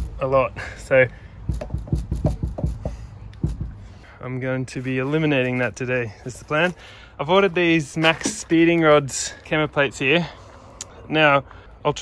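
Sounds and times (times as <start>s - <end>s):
dull low knocks: 1.4s - 4.0s.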